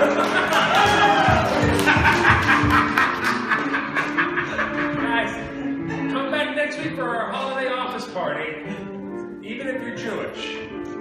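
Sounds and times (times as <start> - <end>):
laughter in quick pulses: 1.7 - 5.2.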